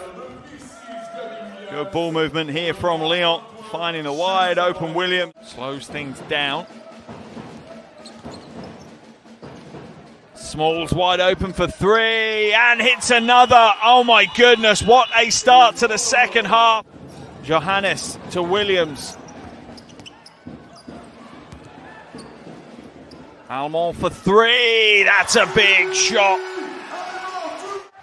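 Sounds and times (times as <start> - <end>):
crowd noise: 0.0 - 28.0
basketball bouncing on hardwood: 19.1 - 23.4.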